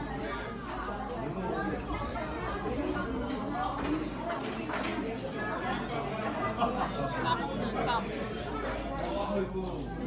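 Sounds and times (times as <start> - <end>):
diners chattering: 0.0 - 10.0.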